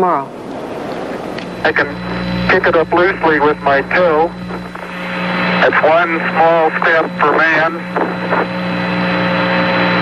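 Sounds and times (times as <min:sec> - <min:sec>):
radio static hiss: 0:00.0 - 0:10.0
steady hum of held tones: 0:00.0 - 0:10.0.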